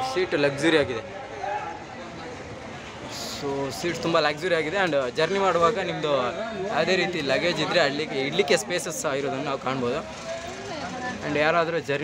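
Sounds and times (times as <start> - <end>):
man talking: 3.1 - 10.1
bus interior background noise: 9.2 - 11.4.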